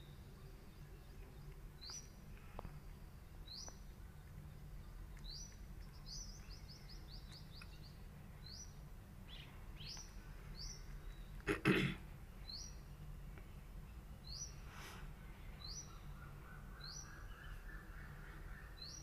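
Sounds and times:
small bird chirping: 0:00.0 - 0:11.5, 0:12.4 - 0:14.7, 0:15.3 - 0:19.0.

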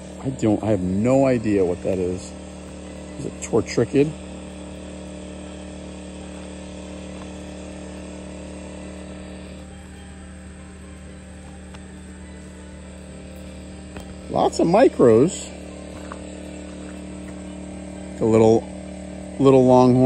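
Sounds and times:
portable generator humming: 0:00.0 - 0:20.0.

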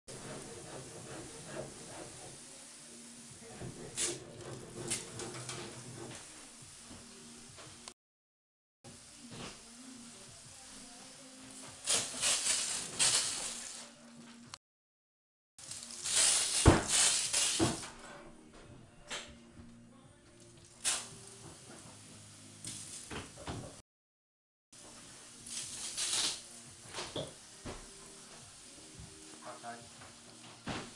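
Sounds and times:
hose nozzle spraying water: 0:11.8 - 0:13.9, 0:15.6 - 0:18.0, 0:20.6 - 0:21.9, 0:25.4 - 0:27.0.

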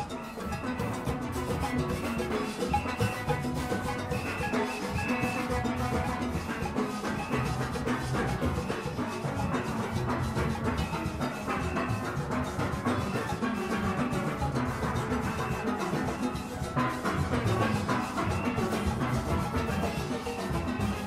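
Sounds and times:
drums and percussion: 0:00.0 - 0:21.0
steel pans struck with sticks: 0:00.0 - 0:21.0.

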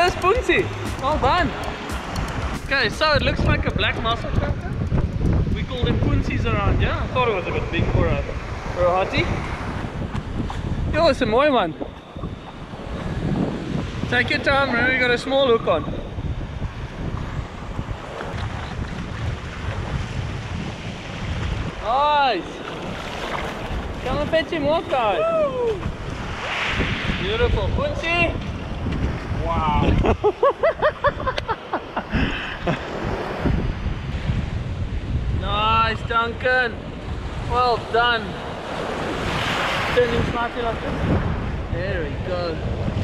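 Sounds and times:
surf washing on beach: 0:00.0 - 0:43.0
wind buffeting microphone: 0:00.0 - 0:43.0
small surf waves breaking: 0:16.7 - 0:29.4, 0:36.8 - 0:41.6
man laughing excitedly: 0:29.8 - 0:32.9.

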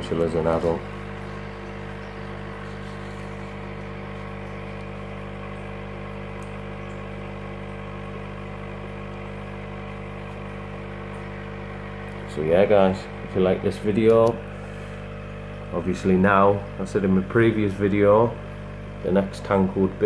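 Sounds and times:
aquarium air pump humming: 0:00.0 - 0:20.0.

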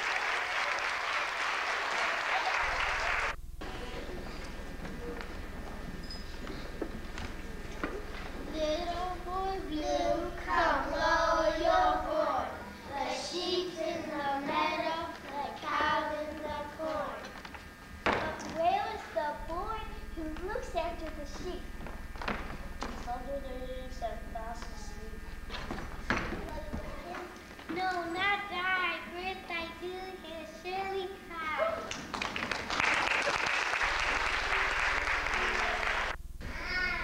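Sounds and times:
children singing together: 0:08.5 - 0:17.3.

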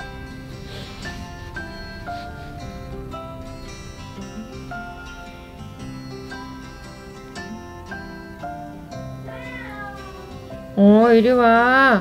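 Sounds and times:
gentle acoustic guitar music: 0:00.0 - 0:12.0
cat meowing: 0:09.2 - 0:10.5.

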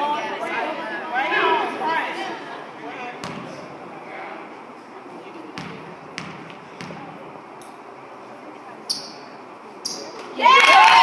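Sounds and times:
crowd chatter: 0:00.0 - 0:10.6
basketball bouncing on hardwood floor: 0:03.2 - 0:03.5, 0:05.6 - 0:07.1.

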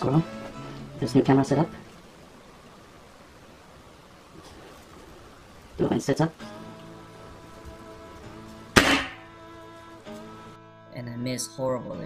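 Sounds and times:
background music: 0:00.0 - 0:02.2, 0:05.9 - 0:12.0
air rifle shot: 0:08.8 - 0:09.3.

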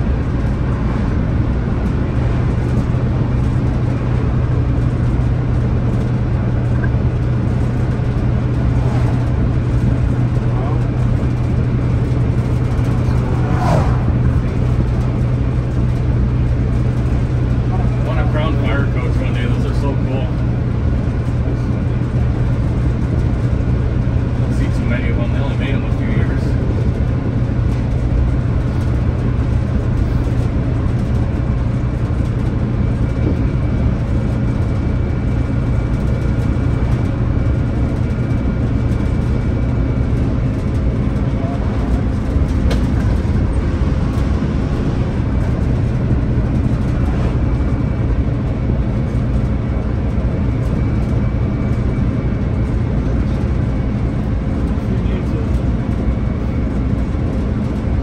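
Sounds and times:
bus diesel engine droning: 0:00.0 - 0:58.0.

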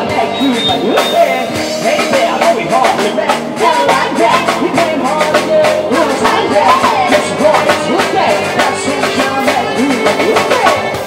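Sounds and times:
drum kit fast beat: 0:00.0 - 0:11.0
live rock band playing: 0:00.0 - 0:11.0
sliding melodic guitar lead: 0:00.0 - 0:11.0.

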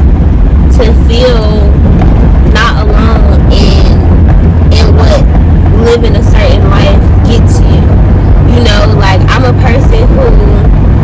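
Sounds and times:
road and engine rumble in car: 0:00.0 - 0:11.0
woman speaking: 0:00.7 - 0:01.8, 0:02.5 - 0:04.1, 0:04.7 - 0:10.7.

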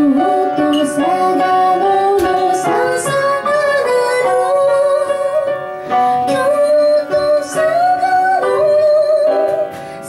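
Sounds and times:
upright piano: 0:00.0 - 0:10.0
woman singing: 0:00.0 - 0:10.0.

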